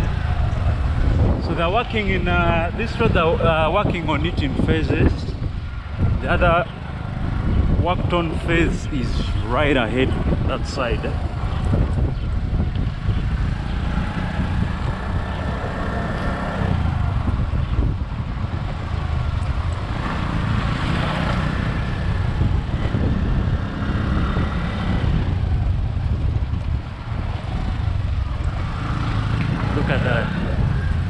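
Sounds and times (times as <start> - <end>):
motorcycle engine: 0.0 - 31.0
road noise: 0.0 - 31.0.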